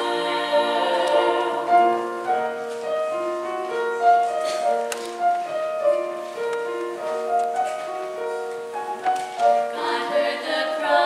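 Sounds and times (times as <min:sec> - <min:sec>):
women singing together: 0:00.0 - 0:02.4, 0:09.4 - 0:11.0
piano chords: 0:00.0 - 0:11.0.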